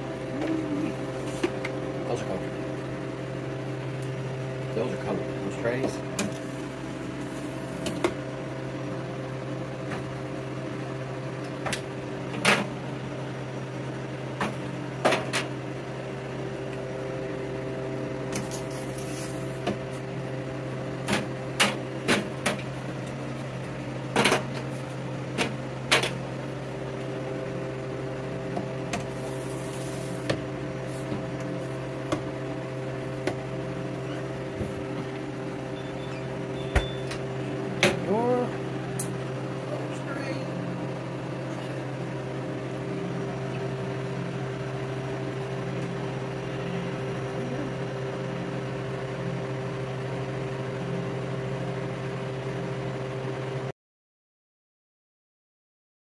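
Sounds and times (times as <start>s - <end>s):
freeze dryer humming: 0.0s - 53.7s.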